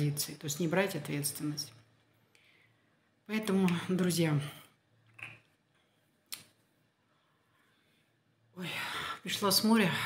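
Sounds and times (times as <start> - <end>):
woman speaking: 0.0 - 1.9, 3.2 - 4.8, 8.5 - 10.0.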